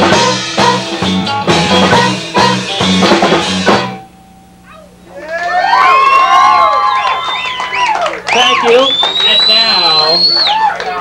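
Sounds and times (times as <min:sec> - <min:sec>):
ska band playing: 0:00.0 - 0:04.1
audience cheering: 0:05.1 - 0:11.0
audience whistles and whoops: 0:05.2 - 0:11.0.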